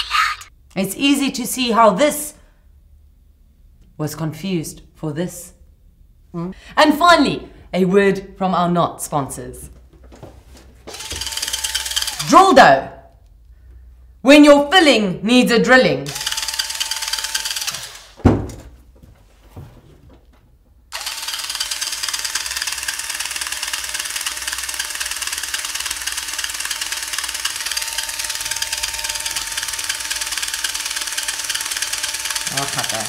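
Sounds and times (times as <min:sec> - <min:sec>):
electric drill whining: 0:10.9 - 0:12.4, 0:16.1 - 0:18.2, 0:20.9 - 0:33.0
thump: 0:18.2 - 0:18.8.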